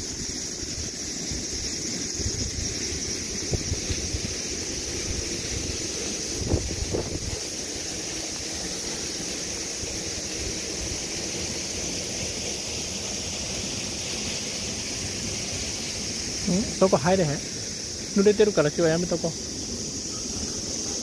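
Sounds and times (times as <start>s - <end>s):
cicadas singing: 0.0s - 21.0s
wind rumble on microphone: 0.7s - 7.4s.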